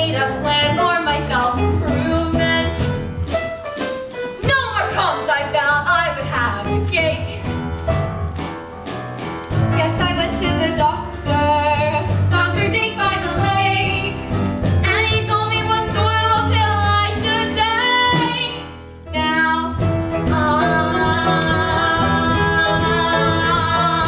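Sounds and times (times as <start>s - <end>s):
musical accompaniment with steady beat: 0.0s - 19.0s, 19.7s - 24.0s
girls singing: 20.3s - 24.0s.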